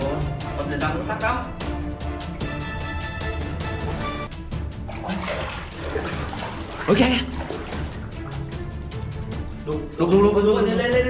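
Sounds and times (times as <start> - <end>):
background music with low beat: 0.0 - 11.0
water splashing: 3.4 - 9.7.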